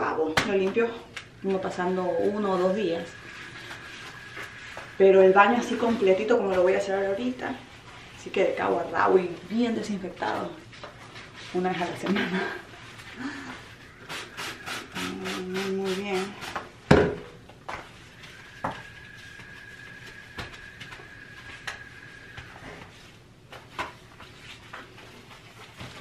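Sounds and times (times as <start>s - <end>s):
steady high whine: 0.0s - 26.0s
scrubbing strokes on sink: 1.4s - 16.8s.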